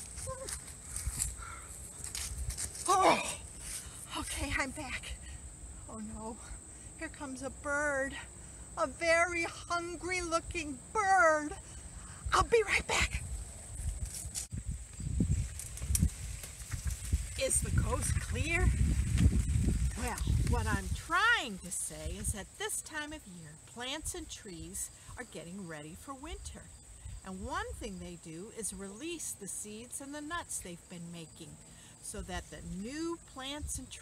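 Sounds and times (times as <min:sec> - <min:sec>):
wind rumble on microphone: 0:00.0 - 0:02.9, 0:11.6 - 0:22.6, 0:33.4 - 0:34.0
soft steps on grass: 0:00.0 - 0:04.0, 0:13.8 - 0:21.4
faint rustles: 0:00.0 - 0:04.4, 0:13.2 - 0:22.4.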